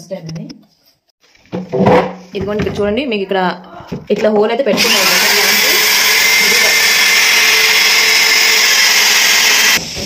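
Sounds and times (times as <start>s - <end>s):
electric drill boring through wood panel: 4.7s - 9.8s.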